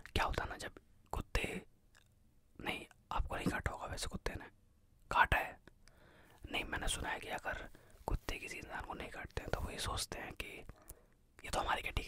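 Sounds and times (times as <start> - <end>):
man whispering: 0.0 - 2.0, 2.6 - 5.7, 6.4 - 12.0.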